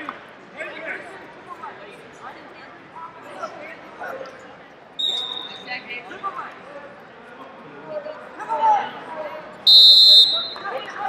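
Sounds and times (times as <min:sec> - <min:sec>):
coaches and spectators shouting: 0:08.2 - 0:11.0.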